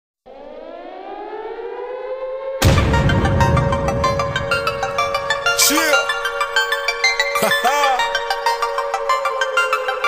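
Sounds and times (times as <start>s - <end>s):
siren-like rising tone: 0.3s - 7.3s
hip-hop beat with drums: 2.9s - 10.0s.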